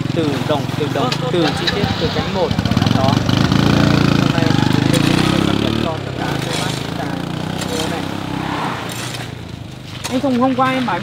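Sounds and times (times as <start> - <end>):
small motorcycle engine running: 0.0 - 11.0.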